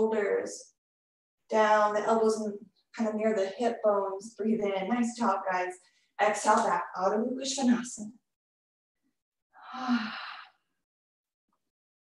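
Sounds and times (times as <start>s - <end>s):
woman sighing: 9.6s - 10.6s.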